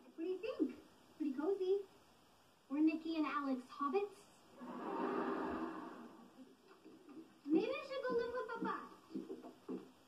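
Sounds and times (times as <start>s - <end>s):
television noise: 0.0s - 10.0s.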